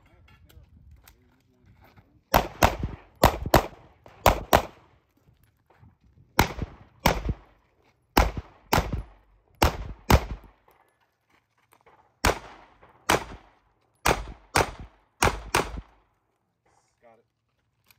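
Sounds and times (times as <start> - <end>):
pistol shots: 2.3 - 4.9, 6.4 - 7.5, 8.2 - 10.6, 12.2 - 16.0.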